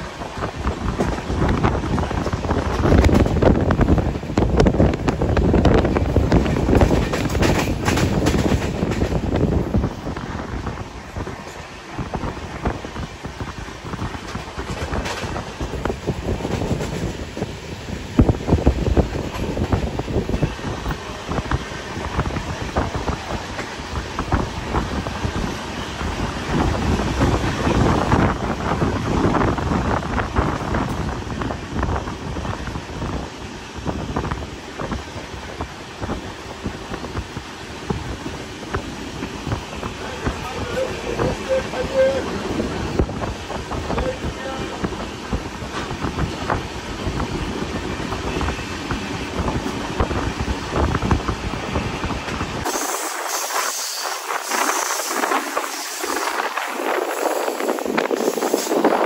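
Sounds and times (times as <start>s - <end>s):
train wheels clattering on rails: 0.0s - 59.0s
wind buffeting microphone: 0.0s - 59.0s.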